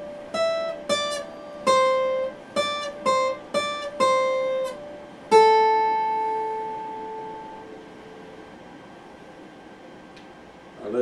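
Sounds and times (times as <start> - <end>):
acoustic guitar note ringing: 0.0 - 8.7
faint hiss: 0.0 - 11.0.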